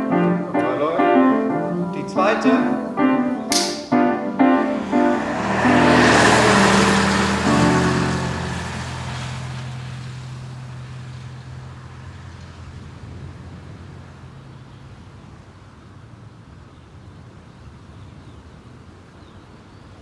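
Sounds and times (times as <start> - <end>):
grand piano notes and chord: 0.0 - 9.9
rushing noise: 3.8 - 10.5.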